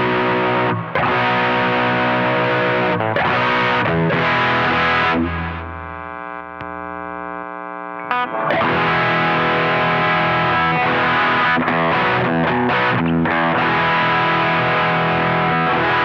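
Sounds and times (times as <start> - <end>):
distorted electric guitar riffing: 0.0 - 16.0.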